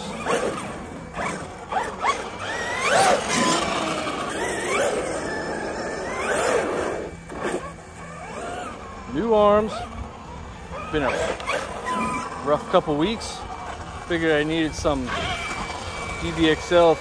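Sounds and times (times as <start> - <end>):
electric motor whining: 0.0 - 17.0.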